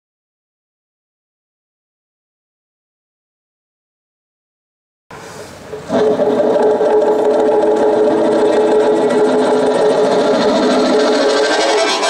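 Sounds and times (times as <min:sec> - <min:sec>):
bowed folk string instrument: 0:06.6 - 0:12.0
cello: 0:06.6 - 0:12.0
accordion: 0:10.0 - 0:12.0.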